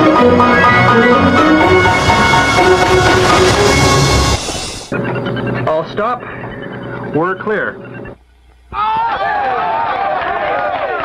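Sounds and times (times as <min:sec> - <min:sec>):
men cheering and shouting: 0:08.7 - 0:11.0.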